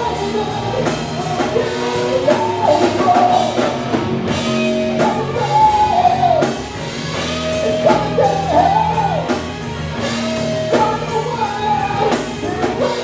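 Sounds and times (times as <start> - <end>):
bass guitar: 0.0 - 13.0
drum kit: 0.0 - 13.0
electric guitars: 0.0 - 13.0.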